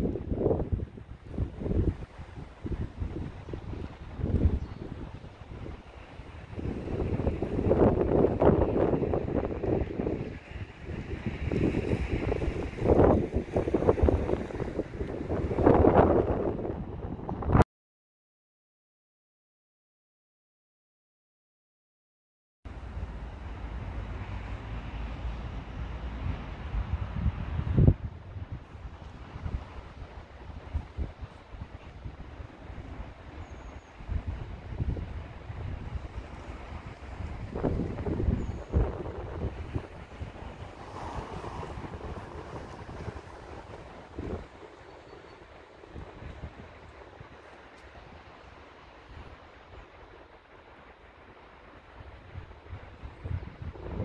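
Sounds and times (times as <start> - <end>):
wind buffeting microphone: 0.0 - 17.6, 23.9 - 50.8, 51.6 - 54.0.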